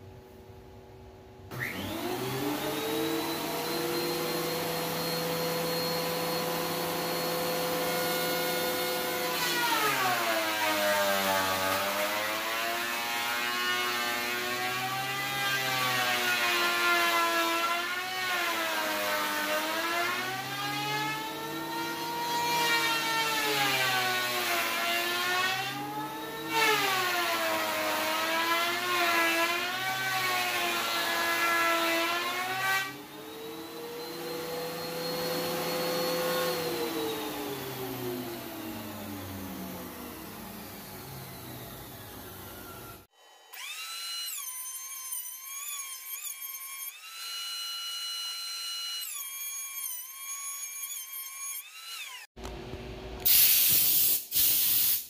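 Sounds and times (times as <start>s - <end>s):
thickness planer motor whine: 1.5s - 49.4s.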